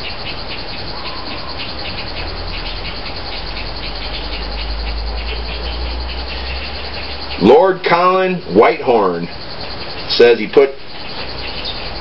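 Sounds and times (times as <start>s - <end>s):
faint fast ticking: 0.0s - 12.0s.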